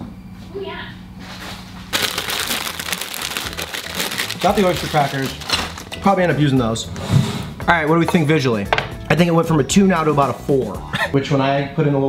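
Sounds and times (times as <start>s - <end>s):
plastic bag crinkling: 1.9s - 6.0s.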